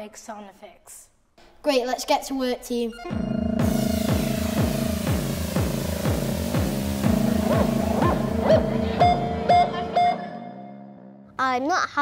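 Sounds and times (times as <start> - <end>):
pulsing synth bass swoops: 3.1 - 10.5
held synthesizer drones: 3.1 - 10.9.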